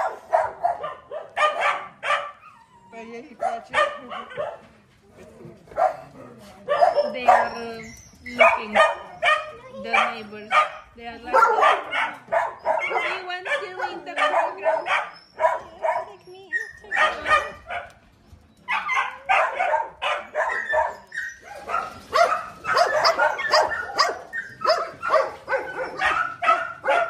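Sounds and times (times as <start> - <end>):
dogs barking: 0.0 - 2.4, 3.3 - 4.7, 5.7 - 18.0, 18.7 - 27.0.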